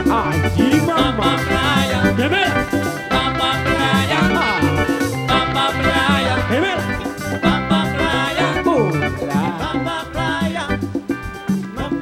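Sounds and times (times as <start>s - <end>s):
tropical dance band playing: 0.0s - 12.0s
lead singer singing: 0.2s - 10.8s
repeating bass line: 0.8s - 10.8s.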